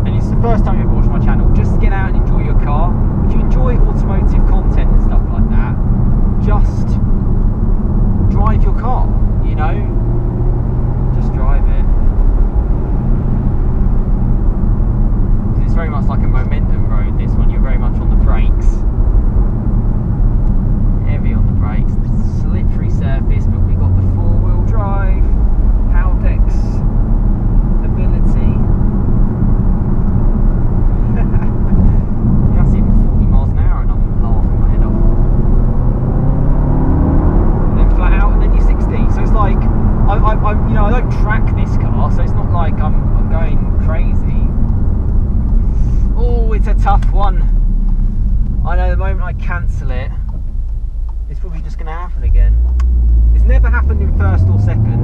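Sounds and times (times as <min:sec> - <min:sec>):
car engine drone: 0:00.0 - 0:55.0
road and tyre noise: 0:00.0 - 0:55.0.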